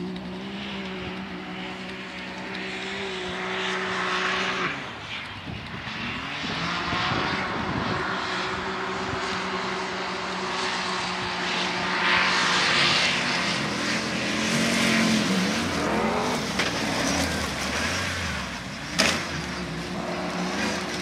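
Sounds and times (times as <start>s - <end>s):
off-road vehicle engine running hard: 0.0s - 21.0s.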